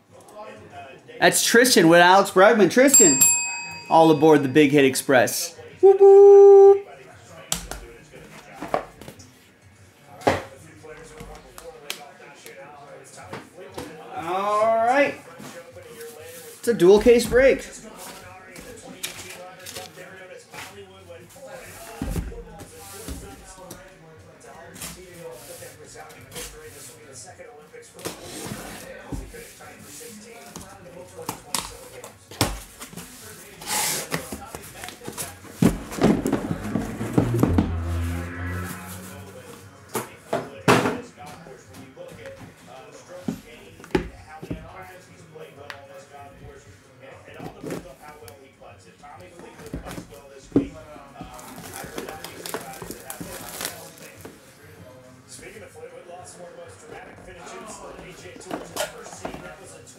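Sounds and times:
cardboard scraping: 32.6s - 38.2s
boxes knocking on a table: 35.1s - 37.8s.

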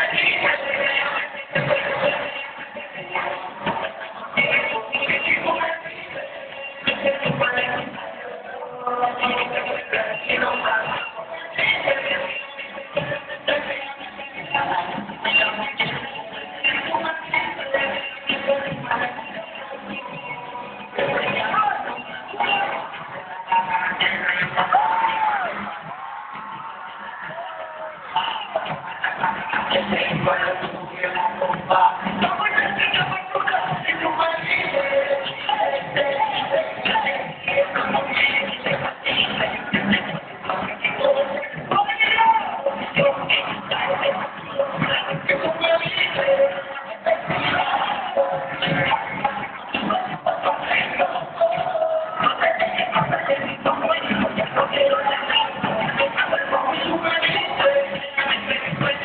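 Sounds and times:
crowd noise: 0.0s - 59.0s
muffled concert pa sound: 0.0s - 59.0s.

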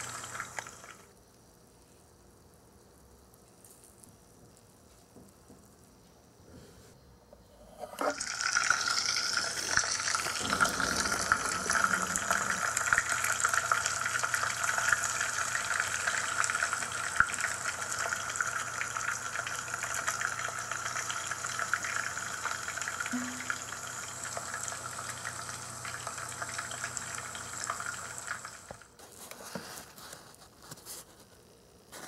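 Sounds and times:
fizzing bubbling in water: 8.2s - 28.7s.

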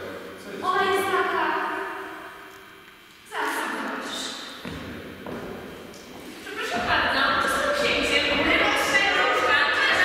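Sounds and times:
soft footsteps on wooden floor: 4.6s - 9.0s.

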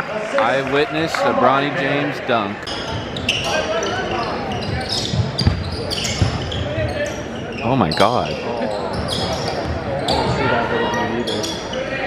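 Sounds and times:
crowd chatter: 0.0s - 12.0s
sneakers squeaking on court: 2.6s - 12.0s
basketball bouncing: 4.5s - 7.0s.

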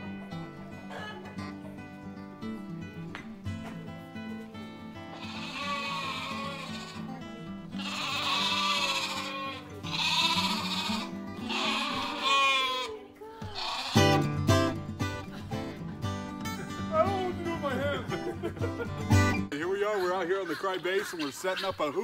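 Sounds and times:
acoustic guitar music: 0.0s - 22.0s
sheep bleating: 5.1s - 14.4s, 19.9s - 22.0s.

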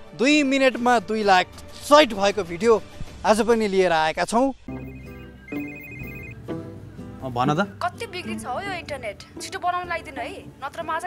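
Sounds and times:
soft background music: 0.0s - 11.0s
electronic phone ringtone: 4.7s - 6.4s.

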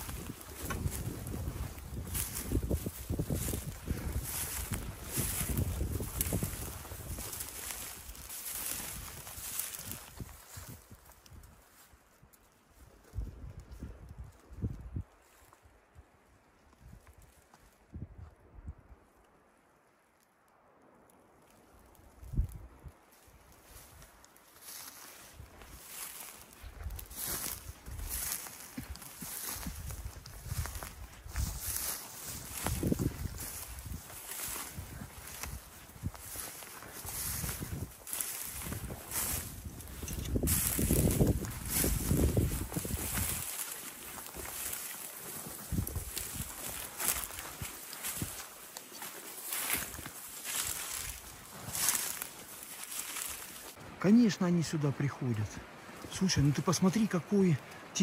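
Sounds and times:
footsteps through shrubs: 0.0s - 16.0s, 21.4s - 58.0s
branches brushing and crackling: 0.0s - 58.0s.

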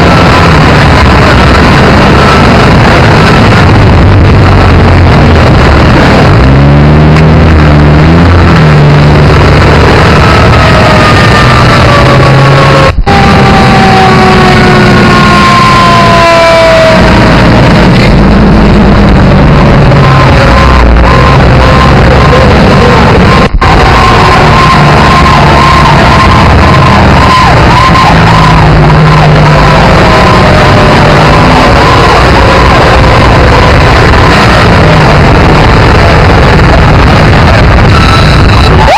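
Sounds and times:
fire engine diesel engines: 0.0s - 38.9s
sirens falling in pitch: 0.0s - 38.9s
wavering siren wail: 0.0s - 38.9s.

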